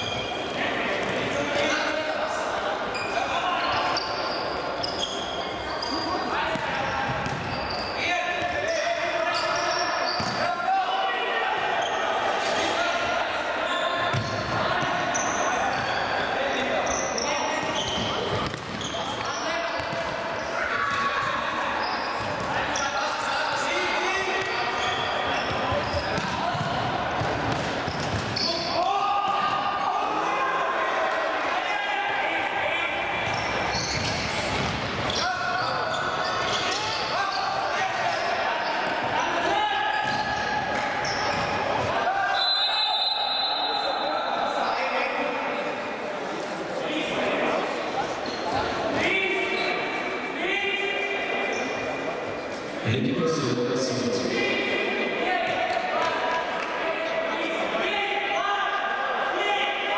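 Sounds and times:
players shouting: 5.7s - 45.2s.

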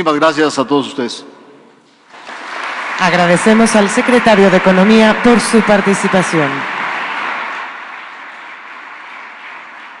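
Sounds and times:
audience applause: 2.1s - 10.0s.

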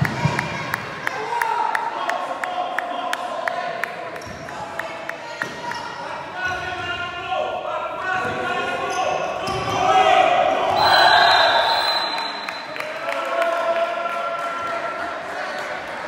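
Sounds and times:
players' voices in large hall: 0.0s - 16.0s.

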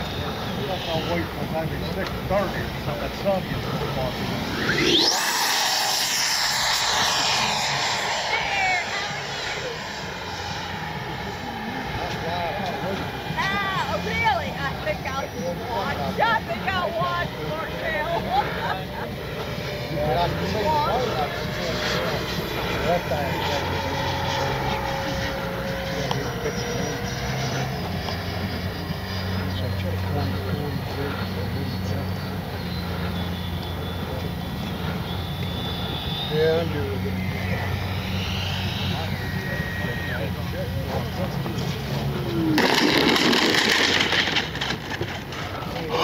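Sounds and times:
electric jet fan whining: 0.0s - 46.0s.

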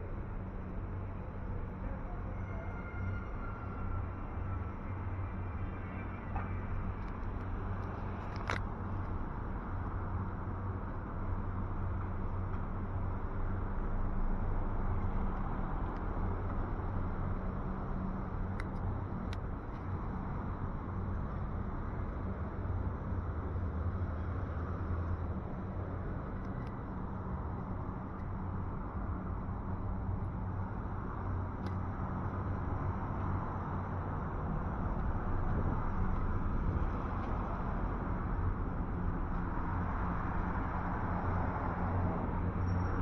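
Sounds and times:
road noise: 0.0s - 43.0s.

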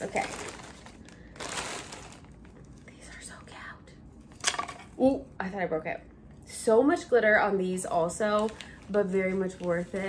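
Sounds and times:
plastic bag rustling: 0.0s - 2.8s, 8.2s - 10.0s
sharp plastic crackle: 0.0s - 2.8s.

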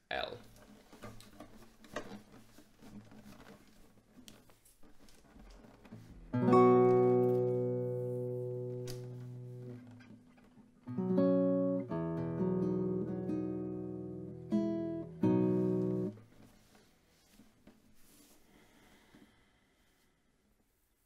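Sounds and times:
classical guitar chords ringing: 6.3s - 10.1s, 10.8s - 16.2s.

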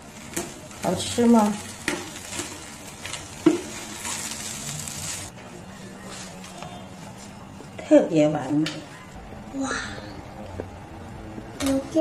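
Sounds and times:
crepe sizzling on a griddle: 0.0s - 5.3s
wooden spatula scraping and knocking: 1.8s - 5.3s.

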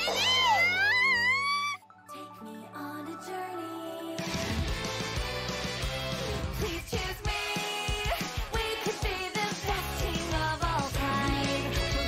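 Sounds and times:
cartoon character crying out: 0.0s - 1.8s
anime theme music: 0.0s - 12.0s.

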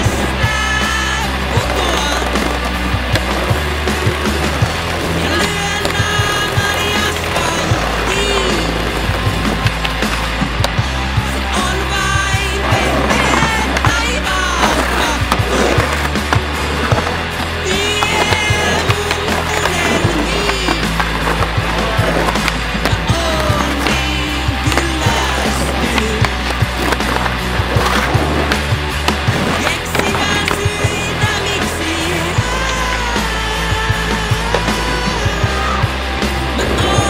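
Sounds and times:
music with steady bass line: 0.0s - 37.0s
skateboard clacking on concrete: 0.0s - 37.0s
skateboard wheels rolling on concrete: 0.0s - 37.0s.

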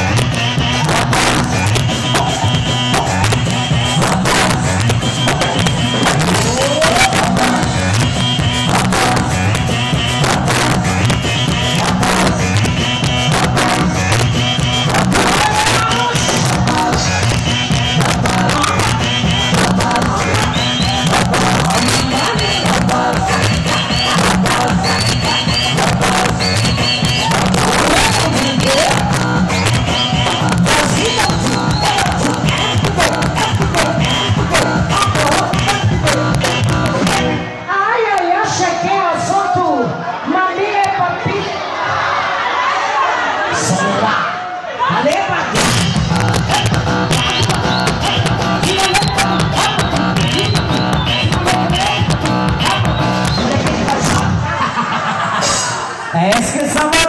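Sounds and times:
live band music over loudspeakers: 0.0s - 41.4s, 44.9s - 57.0s
crowd cheering: 0.0s - 57.0s.

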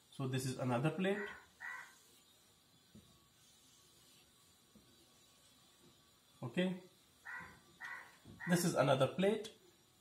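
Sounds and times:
whiteboard marker squeak: 7.3s - 8.6s.

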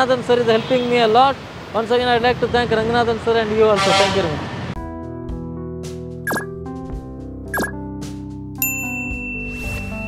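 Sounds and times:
background music: 4.8s - 10.0s.

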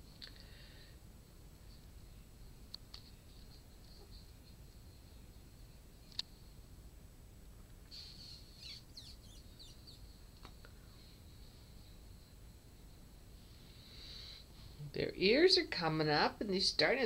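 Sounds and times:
kittens squeaking: 7.9s - 10.0s.

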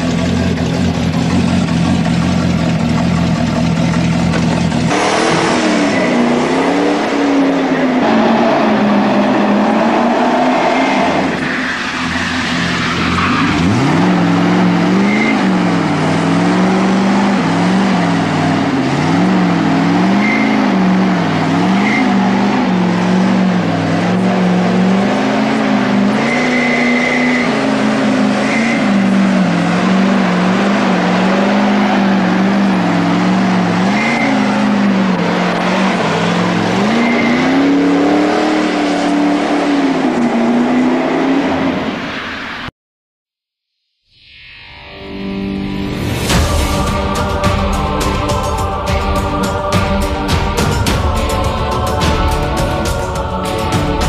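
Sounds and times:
car engine idling and revving: 0.0s - 42.7s, 45.3s - 54.0s
tire squeals: 4.9s - 42.7s.

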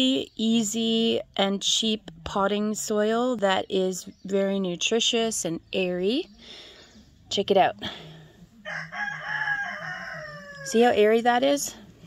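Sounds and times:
rooster crowing: 8.6s - 10.9s.

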